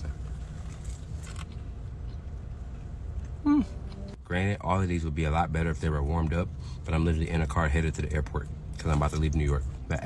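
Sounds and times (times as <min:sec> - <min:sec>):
man humming mm of approval: 0:03.4 - 0:04.1.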